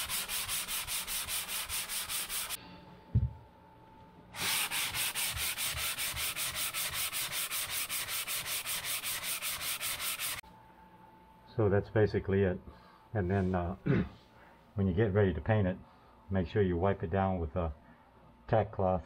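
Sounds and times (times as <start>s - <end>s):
sanding block rubbing drywall: 0.0s - 2.6s, 4.4s - 10.4s.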